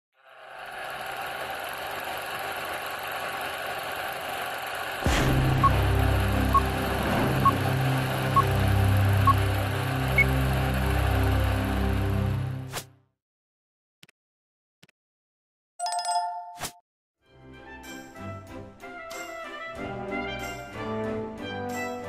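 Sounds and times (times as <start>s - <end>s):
film projector hum: 0.2s - 12.6s.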